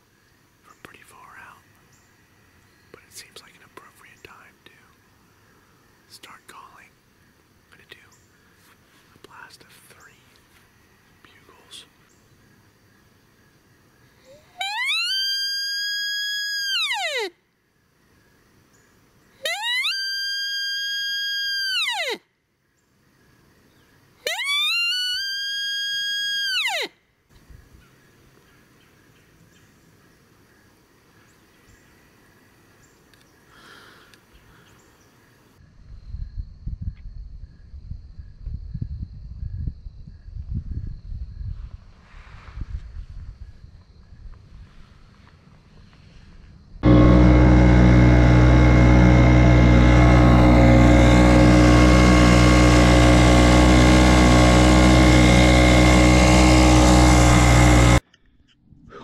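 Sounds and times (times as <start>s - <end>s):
mouth-blown deer call: 14.2s - 17.3s.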